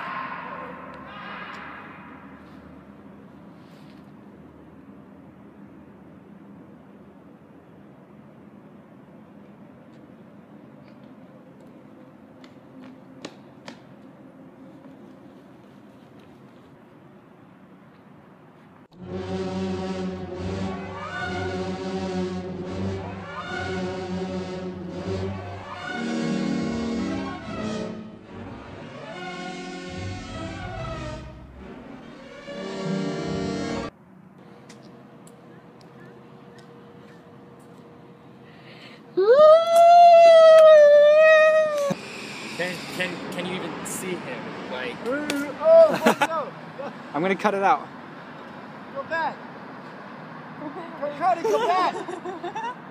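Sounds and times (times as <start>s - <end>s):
person screaming high-pitched: 0.0s - 2.1s, 39.2s - 42.0s
footsteps on pavement: 10.8s - 16.8s, 34.6s - 37.9s.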